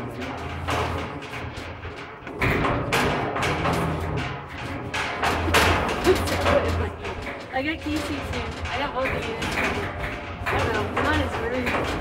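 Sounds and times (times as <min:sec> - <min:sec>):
mine skip hoist rumbling and clattering: 0:00.0 - 0:12.0.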